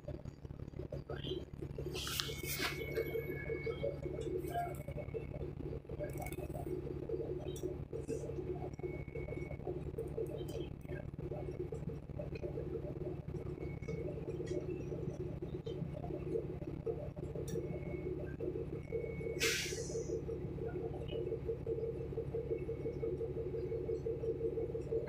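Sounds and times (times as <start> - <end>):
bus diesel engine drone: 0.0 - 25.0.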